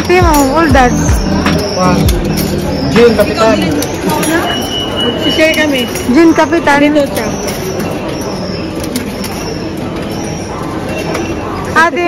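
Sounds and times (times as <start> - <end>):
indoor public space background noise: 0.0 - 12.0.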